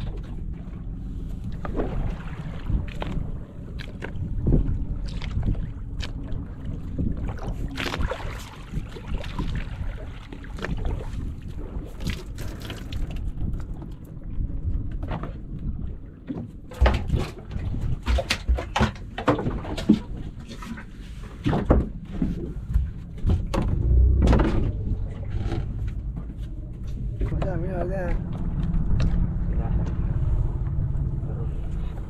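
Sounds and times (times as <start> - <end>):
knocks and thumps on boat: 0.0 - 30.9
water around boat: 0.0 - 32.0
wind: 0.0 - 32.0.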